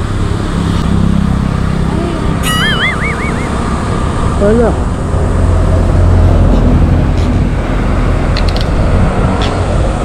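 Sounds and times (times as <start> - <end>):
vehicle engine rumble: 0.0 - 10.0
high warbling whistle: 2.4 - 3.7.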